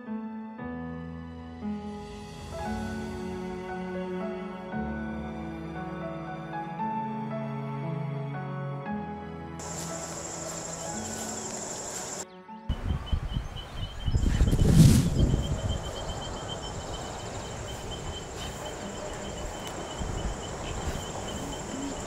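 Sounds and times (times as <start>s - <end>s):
soft music: 0.0s - 22.0s
crickets trilling: 9.6s - 22.0s
pulsed insect chirping: 9.6s - 22.0s.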